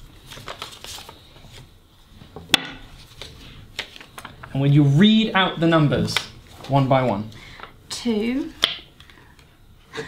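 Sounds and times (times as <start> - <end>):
paper rustling: 0.0 - 1.8, 2.9 - 4.6.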